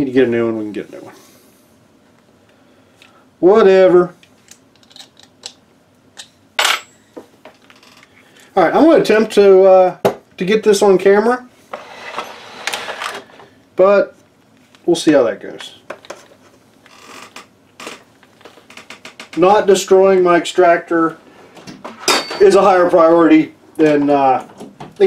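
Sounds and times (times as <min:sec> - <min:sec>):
small tools clicking and rustling: 0:04.4 - 0:05.6
metal part clinking on wood: 0:04.8 - 0:05.6.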